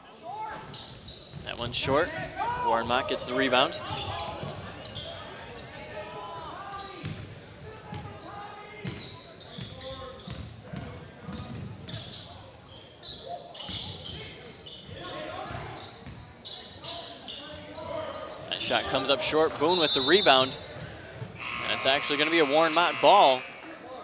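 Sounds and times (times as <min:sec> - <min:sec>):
voices echoing in gym: 0:00.0 - 0:24.0.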